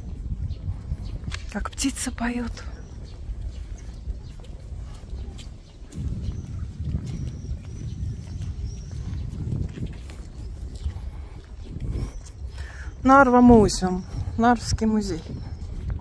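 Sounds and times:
birds singing faintly: 0:00.0 - 0:16.0
wind rumbling on microphone: 0:00.0 - 0:16.0.

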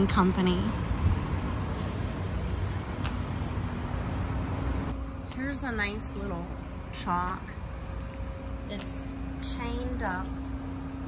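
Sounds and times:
vehicle engines idling: 0:00.0 - 0:11.0.

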